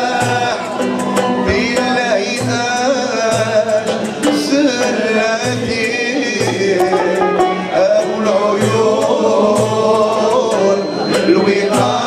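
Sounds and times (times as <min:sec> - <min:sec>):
frame drum beat: 0:00.0 - 0:12.0
man singing: 0:00.0 - 0:12.0
plucked lutes: 0:03.5 - 0:09.6
bowed violin: 0:06.0 - 0:08.4.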